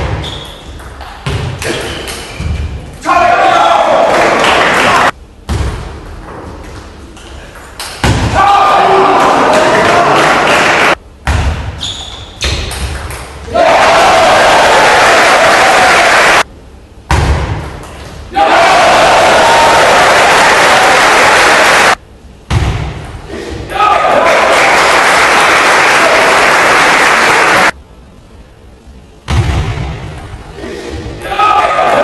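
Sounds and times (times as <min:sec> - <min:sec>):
spectators clapping and cheering: 0:03.6 - 0:05.1, 0:08.8 - 0:11.0, 0:13.5 - 0:16.5, 0:18.4 - 0:22.0, 0:23.9 - 0:27.8.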